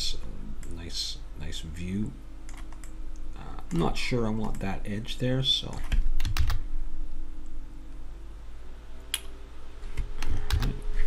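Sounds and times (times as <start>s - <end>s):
low steady hum: 0.0s - 11.0s
computer keyboard clicks: 2.5s - 2.9s, 4.4s - 4.6s, 5.7s - 6.6s, 10.2s - 10.8s.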